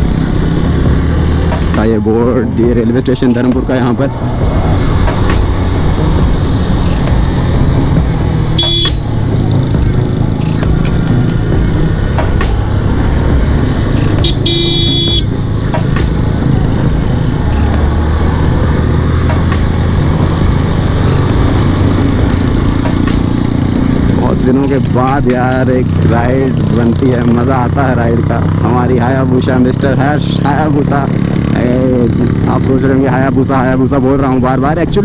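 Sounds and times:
motorcycle engine running: 0.0s - 35.0s
horn sounding: 8.4s - 9.3s, 13.9s - 15.4s.

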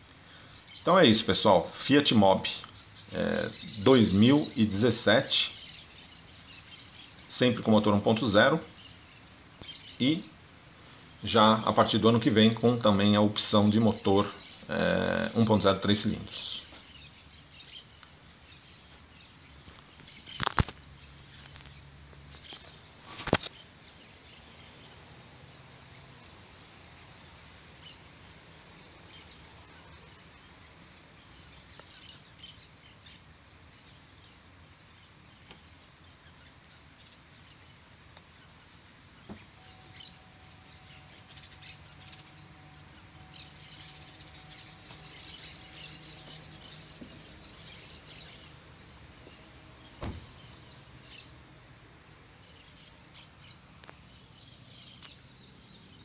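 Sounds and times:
small birds chirping: 0.0s - 56.0s
small ticks: 19.6s - 23.6s, 38.1s - 38.4s, 53.8s - 54.0s
faint steady tone: 38.1s - 46.0s
sharp knock: 50.0s - 50.2s.

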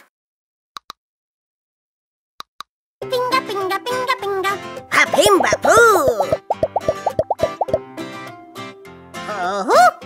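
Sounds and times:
bright children's cartoon music: 3.0s - 10.0s
cartoon pop sound effects: 5.1s - 7.8s.

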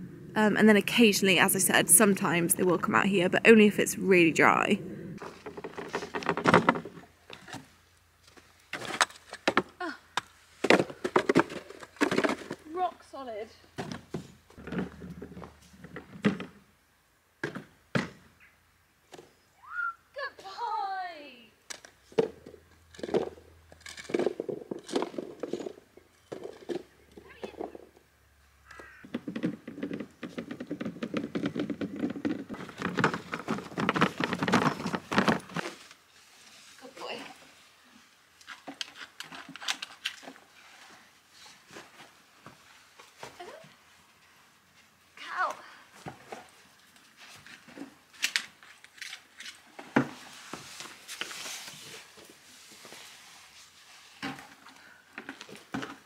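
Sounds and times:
rake scraping frosty ground: 31.8s - 37.7s, 49.4s - 54.2s.

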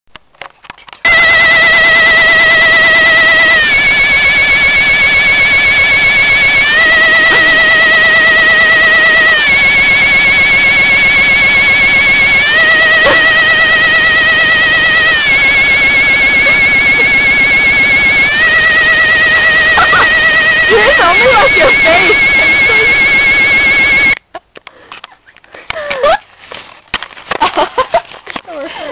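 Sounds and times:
warbling electronic toy tone: 1.1s - 24.2s.

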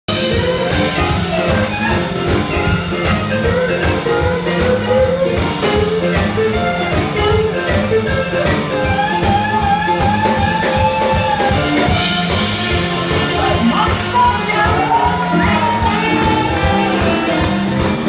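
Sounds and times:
piano: 0.1s - 18.0s
steady drum beat: 0.1s - 18.0s.

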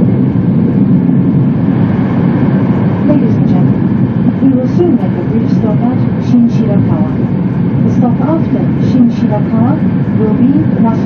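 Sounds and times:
indistinct passenger conversation: 3.0s - 11.0s
train running noise inside cabin: 7.8s - 11.0s.

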